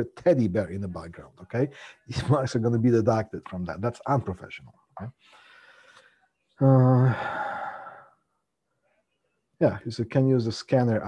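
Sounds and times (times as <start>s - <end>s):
man sighing: 6.6s - 8.0s.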